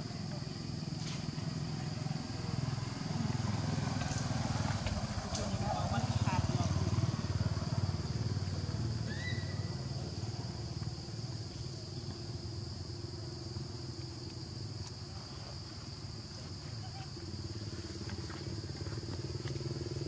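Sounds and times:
motorbike engine passing: 0:00.5 - 0:13.6, 0:16.0 - 0:20.0.

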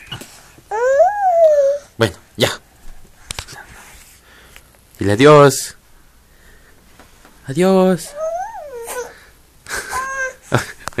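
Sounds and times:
toddler high-pitched vocal sound: 0:00.7 - 0:01.9, 0:08.0 - 0:09.2, 0:09.8 - 0:10.5.

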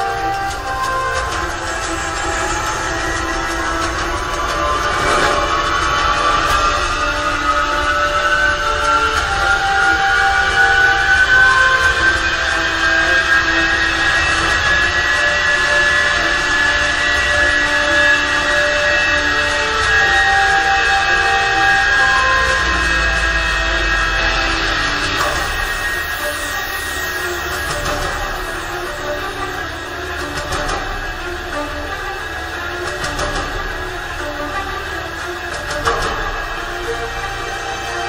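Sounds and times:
synthesized notes changing pitch: 0:00.0 - 0:30.2
gas turbine spooling up: 0:00.0 - 0:38.0.

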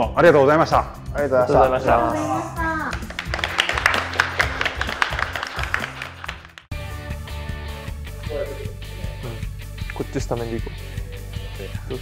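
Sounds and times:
background music: 0:00.0 - 0:12.0
people clapping: 0:02.8 - 0:06.7.

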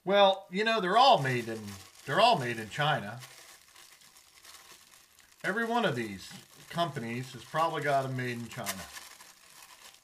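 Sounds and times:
plastic bag crinkling: 0:00.7 - 0:10.0.

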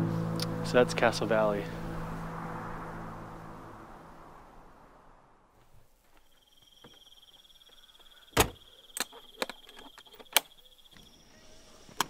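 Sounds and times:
high-pitched buzzing tone: 0:00.0 - 0:04.6.

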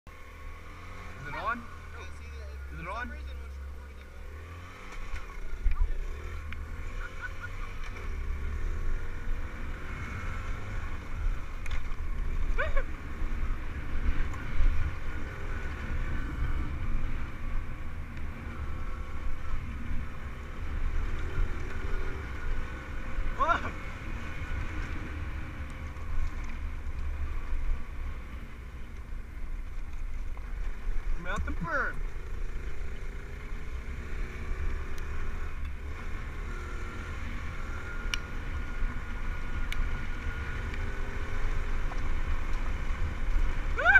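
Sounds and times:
dirt bike engine: 0:00.1 - 0:43.9.

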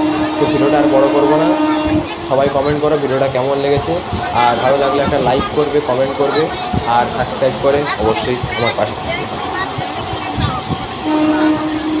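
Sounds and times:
train horn: 0:00.0 - 0:02.8, 0:10.8 - 0:12.0
passenger train running: 0:00.0 - 0:12.0.

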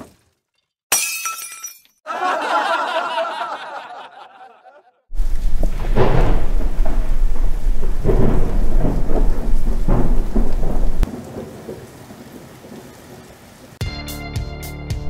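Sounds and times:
crackling thunder: 0:05.1 - 0:13.8
rain hiss: 0:05.1 - 0:13.8.

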